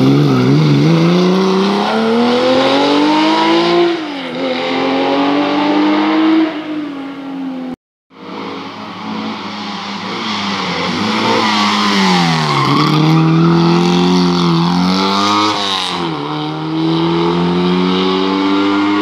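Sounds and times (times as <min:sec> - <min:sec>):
rally car engine revving: 0:00.0 - 0:06.7, 0:08.2 - 0:19.0.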